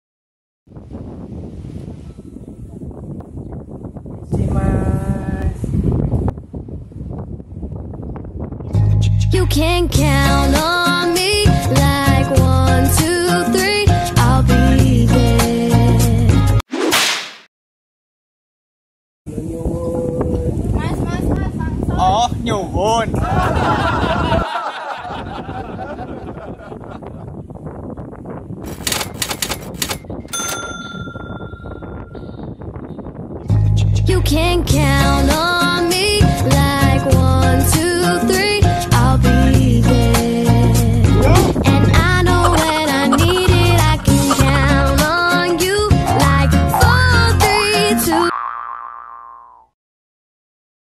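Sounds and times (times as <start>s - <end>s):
wind buffeting microphone: 0.7s - 10.1s, 19.3s - 39.6s, 40.3s - 47.4s
mechanical cash register clicks: 28.6s - 31.1s
bright bell ding: 30.3s - 32.5s
man calling out: 41.1s - 44.6s.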